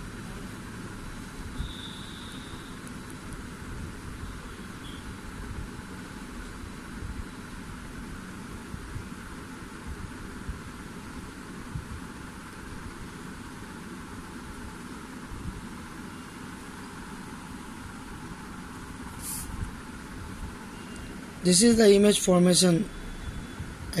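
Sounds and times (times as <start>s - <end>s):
background rumble and hiss: 0.0s - 24.0s
brief high hiss: 19.1s - 19.6s.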